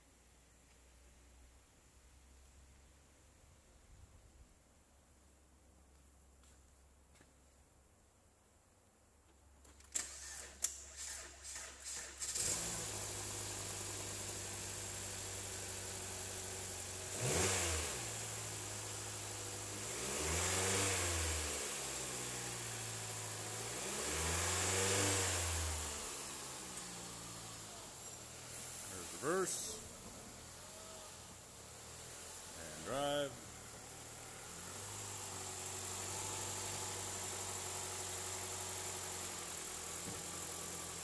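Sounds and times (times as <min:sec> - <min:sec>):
car engine starter cranking: 0:09.7 - 0:13.2
car engine idling and revving: 0:10.0 - 0:41.0.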